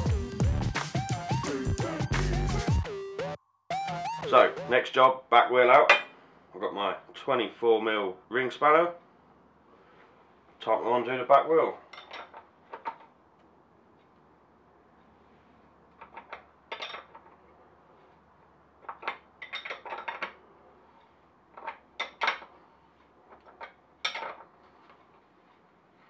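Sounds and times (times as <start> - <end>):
spanner clinking on metal: 11.9 - 13.1, 16.0 - 17.3, 18.8 - 20.4, 23.3 - 24.5.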